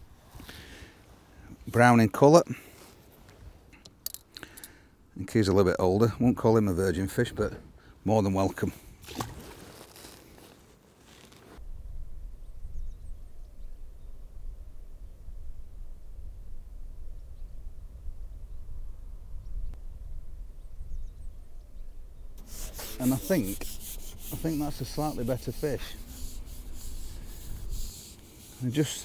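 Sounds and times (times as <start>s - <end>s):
wind rumble on microphone: 11.6s - 22.4s.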